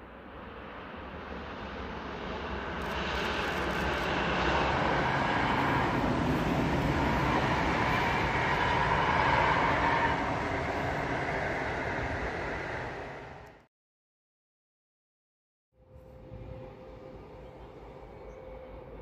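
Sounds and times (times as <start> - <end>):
train wheels rushing on rails: 1.5 - 13.6.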